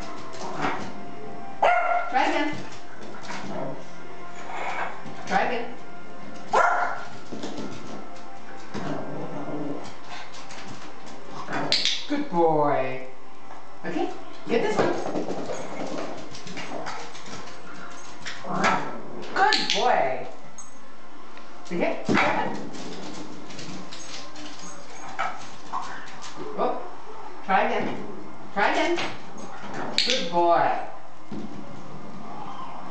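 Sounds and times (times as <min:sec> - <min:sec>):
small dog barking: 0:01.6 - 0:02.1, 0:06.5 - 0:07.0.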